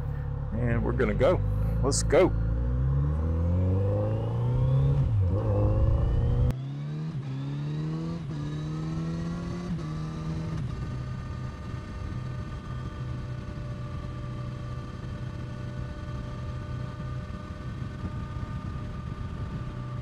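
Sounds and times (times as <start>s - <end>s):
motorcycle engine accelerating: 0.0s - 20.0s.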